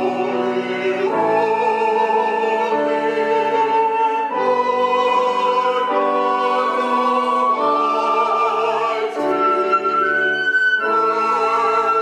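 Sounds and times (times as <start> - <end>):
choir singing sustained chords: 0.0 - 12.0
flute: 0.0 - 12.0.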